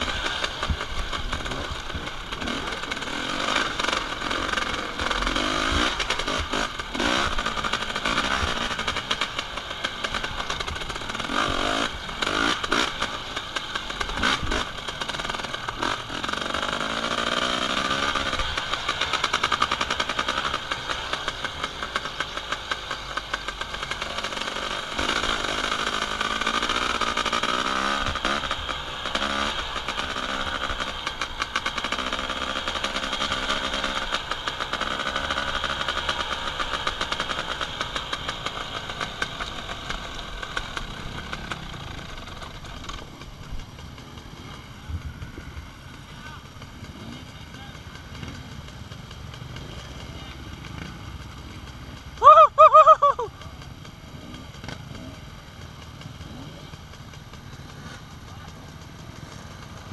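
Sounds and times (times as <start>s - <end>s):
dirt bike engine revving: 0.0s - 59.9s.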